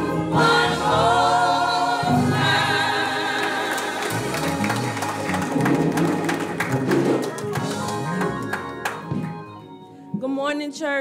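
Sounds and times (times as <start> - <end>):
gospel band keyboard and guitar: 0.0 - 10.1
drum hits: 5.4 - 8.2.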